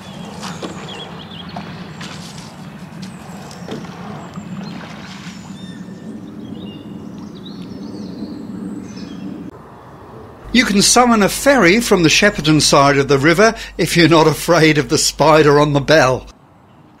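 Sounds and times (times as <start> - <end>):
birds chirping: 0.0 - 17.0
steady low hum: 10.1 - 16.3.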